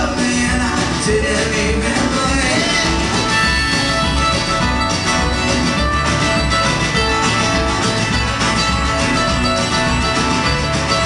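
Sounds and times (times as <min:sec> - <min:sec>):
bass: 0:00.0 - 0:11.0
drums: 0:00.0 - 0:11.0
plucked mandolin: 0:00.0 - 0:11.0
strummed acoustic guitar: 0:00.0 - 0:11.0.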